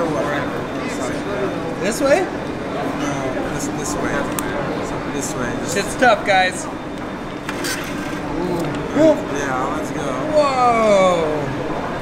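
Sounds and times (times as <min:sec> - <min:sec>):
faint voices: 0:00.0 - 0:12.0
station background noise: 0:00.0 - 0:12.0.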